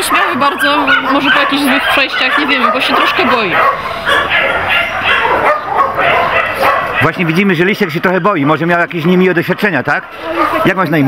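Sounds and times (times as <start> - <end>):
dogs barking: 0.0 - 11.0.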